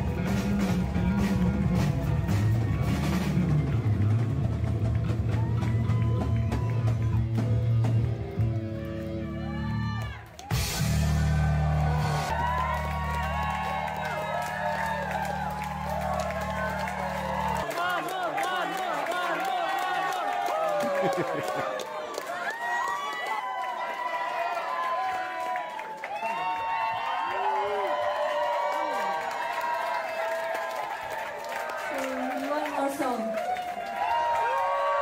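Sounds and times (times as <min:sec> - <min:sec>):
live metal band playing: 0:00.0 - 0:17.7
concert crowd cheering and shouting: 0:00.0 - 0:35.0.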